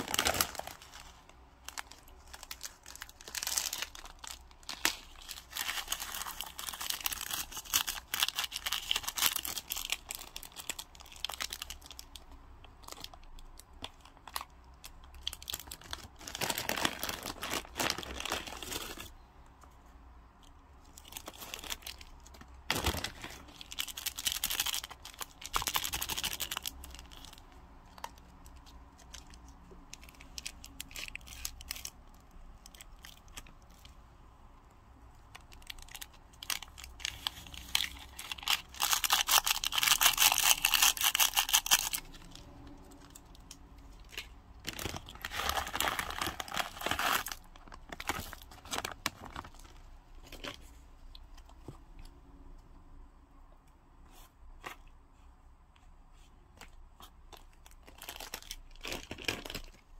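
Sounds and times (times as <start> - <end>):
plastic packaging crinkling: 0.0 - 19.2, 20.8 - 34.0, 35.2 - 50.8, 57.3 - 59.9.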